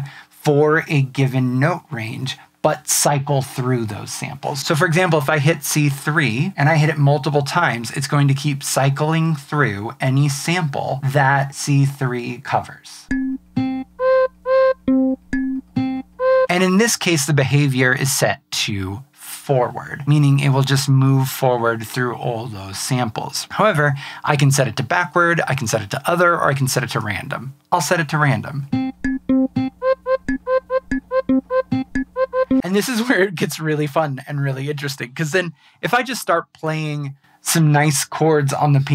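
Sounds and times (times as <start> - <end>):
short sampled instrument notes: 13.1 - 16.6, 28.7 - 32.7.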